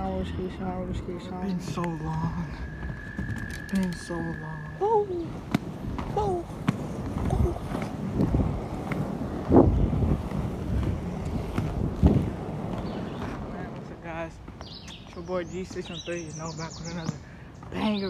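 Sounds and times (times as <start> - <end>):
skate wheels rolling on pavement: 0.0 - 18.0
wind buffeting microphone: 0.0 - 18.0.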